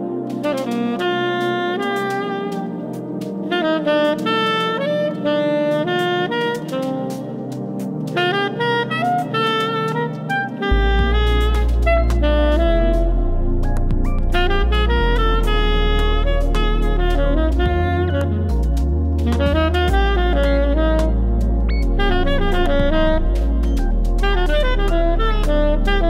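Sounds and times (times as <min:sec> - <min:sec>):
electro-funk backing track: 0:00.0 - 0:26.0
tenor saxophone improvising jazz: 0:00.0 - 0:26.0
heavy deep bass: 0:10.7 - 0:26.0.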